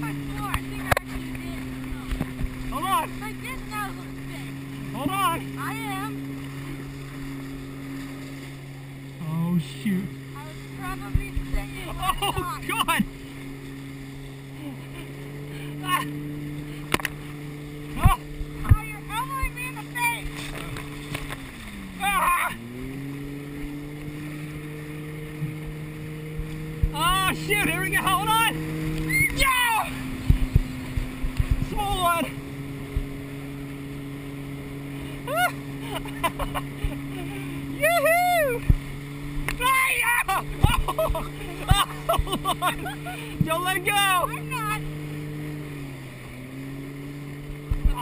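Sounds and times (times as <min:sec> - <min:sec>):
wind thumping on camera: 0:00.0 - 0:03.5, 0:10.8 - 0:13.2, 0:16.6 - 0:21.9, 0:23.6 - 0:33.3, 0:38.5 - 0:43.6, 0:47.4 - 0:48.0
motorboat engine droning: 0:00.0 - 0:48.0
water slapping: 0:00.0 - 0:48.0.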